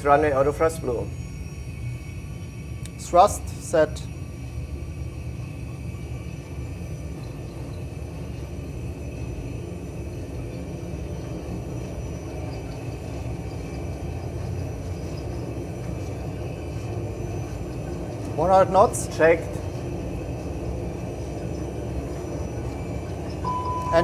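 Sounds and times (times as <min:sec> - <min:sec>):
high engine whine: 0:00.0 - 0:24.0
jet engines rumbling: 0:00.0 - 0:24.0
wheels on runway: 0:03.8 - 0:24.0.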